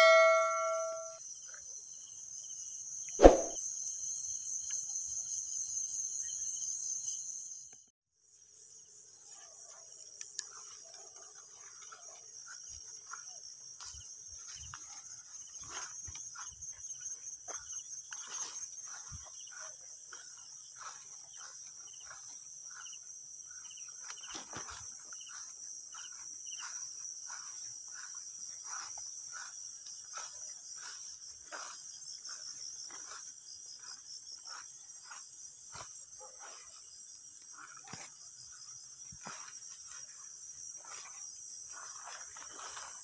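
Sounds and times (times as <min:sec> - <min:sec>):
crickets trilling: 0:00.0 - 0:43.0
footsteps through grass: 0:09.4 - 0:43.0.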